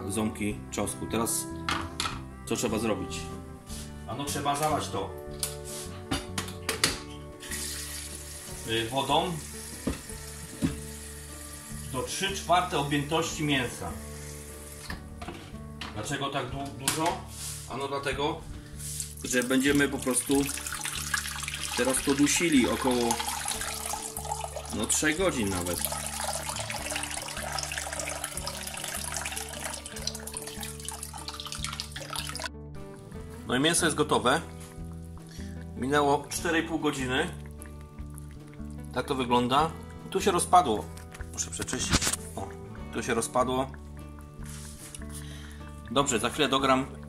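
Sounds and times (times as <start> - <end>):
background music: 0.0 - 47.0
water pouring into pot: 7.4 - 14.9, 18.9 - 32.5, 35.2 - 45.0.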